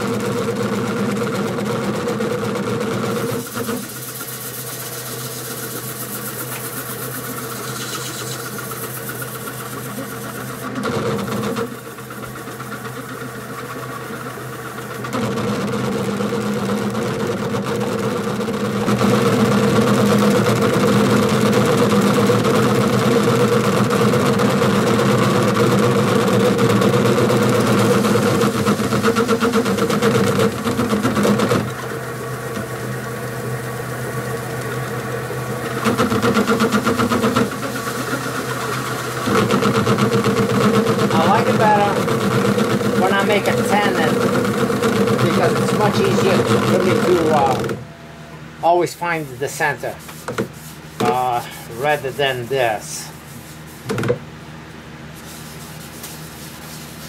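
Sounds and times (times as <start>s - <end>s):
wood lathe running: 0.0s - 48.0s, 48.6s - 54.2s
cloth buffing spinning wood: 0.0s - 57.0s.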